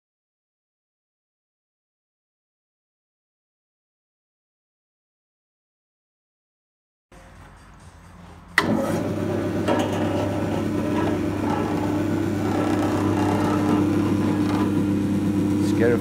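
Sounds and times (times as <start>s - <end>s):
electric motor humming: 8.6s - 16.0s.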